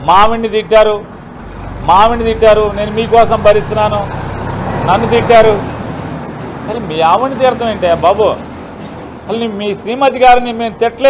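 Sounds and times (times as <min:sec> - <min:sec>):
man speaking: 0:01.8 - 0:04.2, 0:04.8 - 0:05.7, 0:06.6 - 0:08.4, 0:09.3 - 0:11.0.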